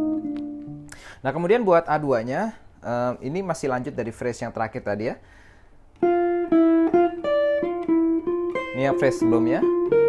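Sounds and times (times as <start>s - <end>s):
jazz guitar single-note line: 0.0s - 0.9s, 6.0s - 10.0s.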